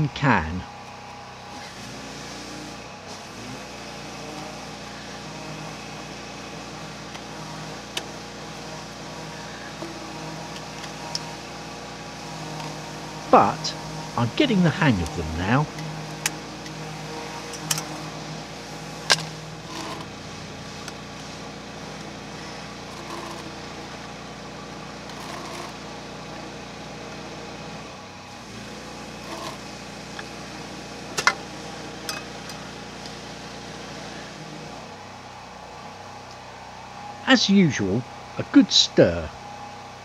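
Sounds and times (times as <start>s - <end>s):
steady engine hum: 0.0s - 40.0s.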